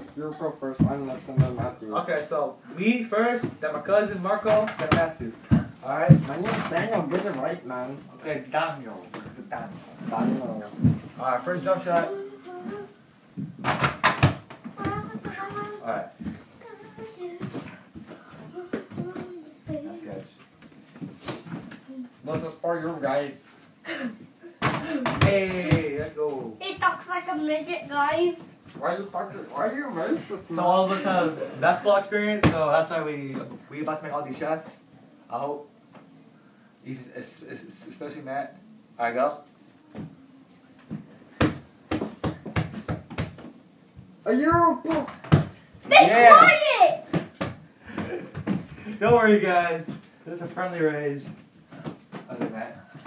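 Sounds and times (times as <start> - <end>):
ball bouncing on floor: 4.4 - 7.4, 13.4 - 16.4, 24.6 - 26.1, 32.4 - 32.6, 40.9 - 45.6, 47.1 - 49.2.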